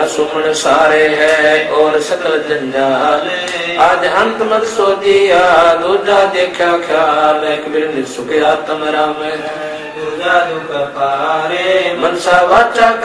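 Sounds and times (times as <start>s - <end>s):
man chanting devotional verses: 0.0s - 13.0s.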